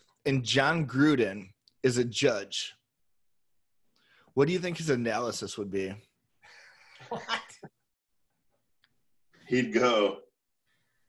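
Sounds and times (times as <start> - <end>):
man speaking: 4.3 - 6.2, 9.4 - 10.4
man laughing: 7.0 - 7.8.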